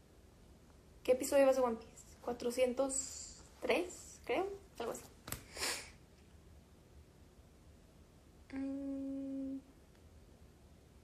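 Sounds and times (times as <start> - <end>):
woman humming a steady note: 8.5 - 9.8.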